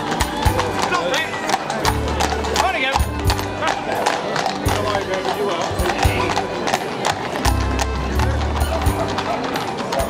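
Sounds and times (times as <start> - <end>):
horse hooves on pavement: 0.0 - 10.0.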